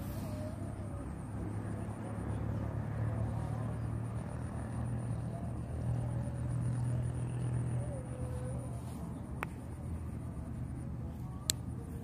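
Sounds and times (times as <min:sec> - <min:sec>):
faint distant voices: 0:00.0 - 0:12.0
steady low hum: 0:00.0 - 0:12.0.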